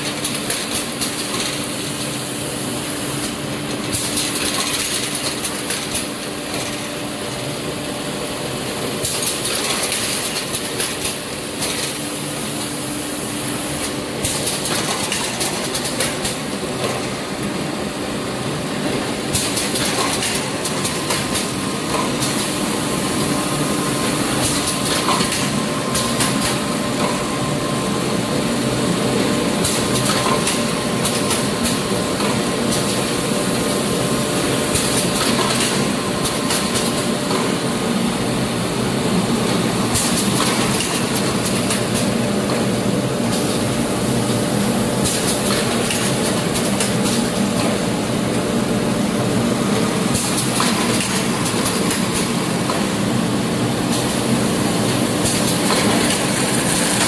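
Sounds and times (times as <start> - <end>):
machine din with clattering: 0.0 - 2.2, 3.2 - 7.5, 9.0 - 12.8, 13.8 - 17.3, 18.8 - 22.7, 24.3 - 27.8, 29.2 - 33.2, 34.5 - 37.8, 39.4 - 48.4, 49.2 - 53.1, 53.8 - 57.0.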